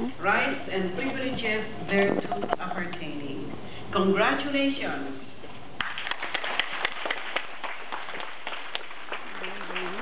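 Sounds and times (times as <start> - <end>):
audience clapping: 5.8 - 10.0.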